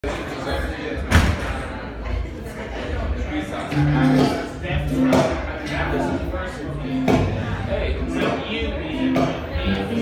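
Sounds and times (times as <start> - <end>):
indistinct voices murmuring: 3.0 - 10.0.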